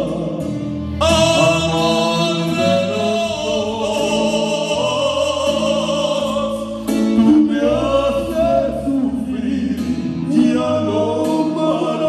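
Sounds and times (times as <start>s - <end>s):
two men singing: 0.0s - 12.0s.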